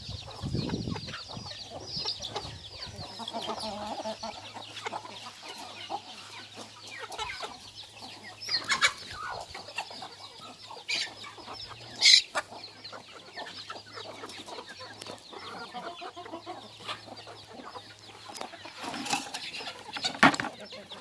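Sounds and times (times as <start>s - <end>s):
chicks peeping: 0.0s - 21.0s
hens clucking: 0.0s - 21.0s.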